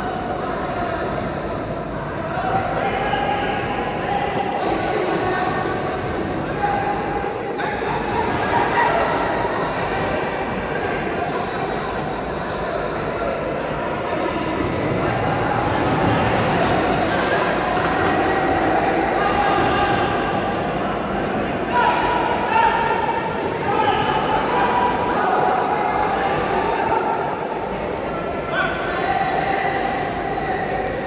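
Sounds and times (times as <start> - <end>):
sports hall din: 0.0 - 31.0.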